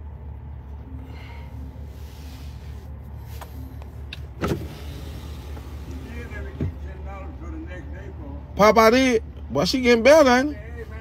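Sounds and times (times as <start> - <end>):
car cabin running noise: 0.8 - 7.6.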